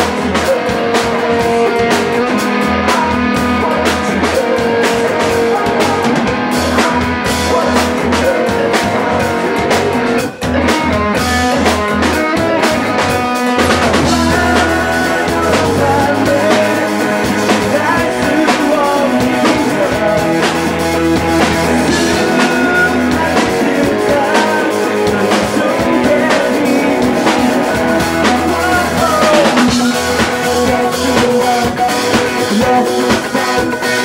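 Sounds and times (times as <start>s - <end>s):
drum kit beat: 0.0s - 34.0s
electric guitar: 0.0s - 34.0s.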